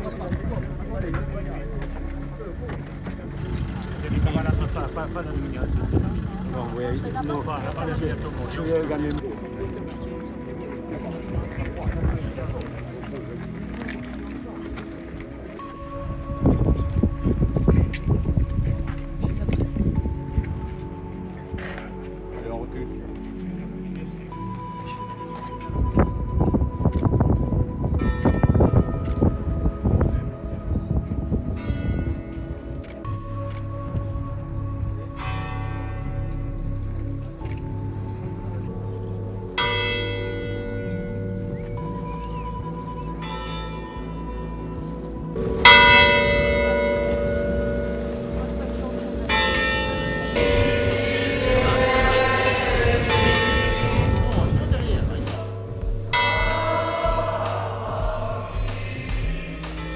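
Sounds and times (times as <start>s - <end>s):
church bell tolling: 39.6s - 41.9s, 45.3s - 59.9s.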